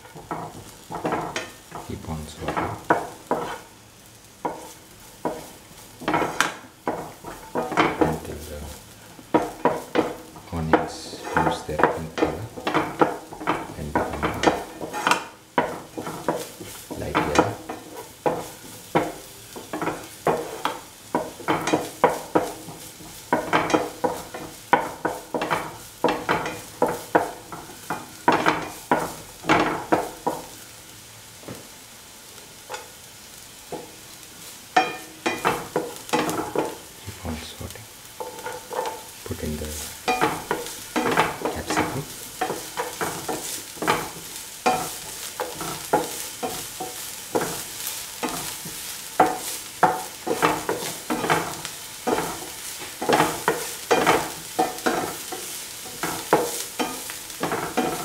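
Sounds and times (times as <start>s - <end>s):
onions sizzling in oil: 0.0s - 58.0s
spatula scraping a pan: 0.1s - 30.7s, 32.6s - 58.0s.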